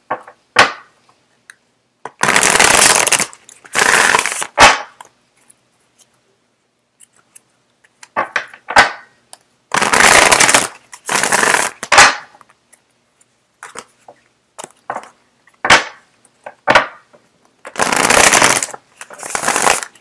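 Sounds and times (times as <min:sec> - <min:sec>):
cards riffle shuffling: 0:02.2 - 0:04.7, 0:09.7 - 0:12.1, 0:17.7 - 0:20.0.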